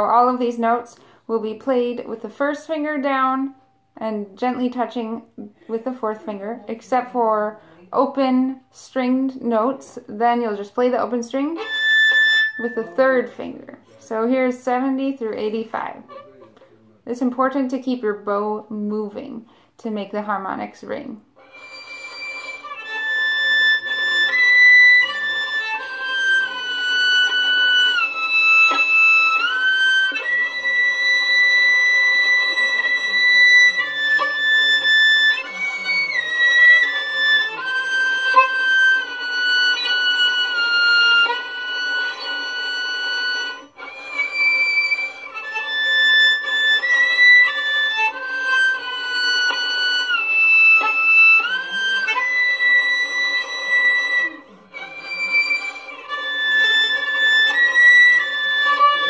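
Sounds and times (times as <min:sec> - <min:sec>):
violin playing high harmonics: 0:10.6 - 0:14.1, 0:15.4 - 0:17.0, 0:21.4 - 0:59.0.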